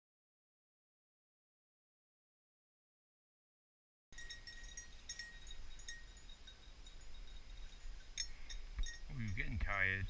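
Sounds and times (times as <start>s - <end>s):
dog collar bell jingling: 4.2s - 10.0s.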